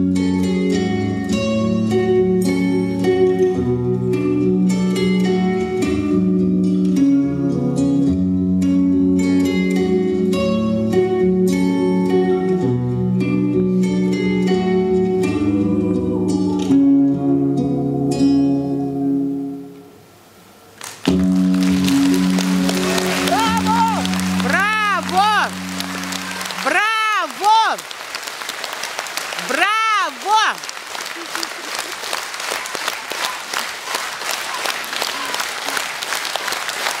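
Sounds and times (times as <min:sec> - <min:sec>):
audience applause: 0:20.8 - 0:37.0
crowd shouts: 0:22.9 - 0:27.8.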